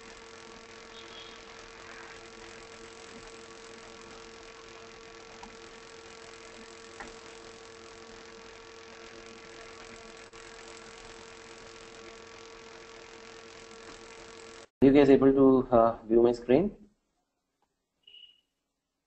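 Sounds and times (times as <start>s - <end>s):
electrical hum: 0.0s - 16.7s.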